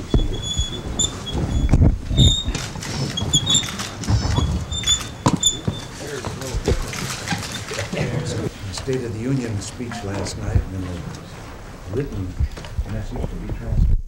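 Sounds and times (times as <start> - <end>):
knocks and clicks: 0.0 - 8.0
office chairs squeaking: 0.0 - 13.7
murmur of voices: 5.4 - 13.7.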